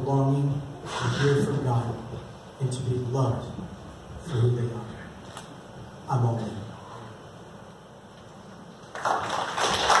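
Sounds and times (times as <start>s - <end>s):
audience applauding: 8.9s - 10.0s.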